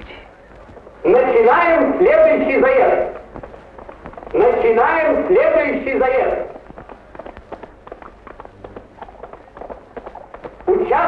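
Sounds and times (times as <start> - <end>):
horse hoofbeats: 0.0 - 11.0.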